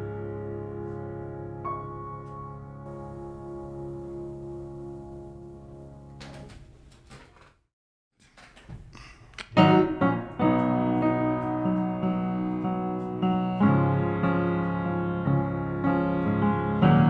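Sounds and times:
keyboard music: 0.0 - 6.3, 9.6 - 17.0.

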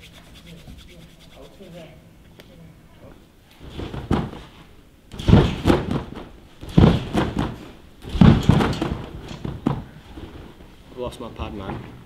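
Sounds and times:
body landing on gym mats: 3.6 - 10.7.

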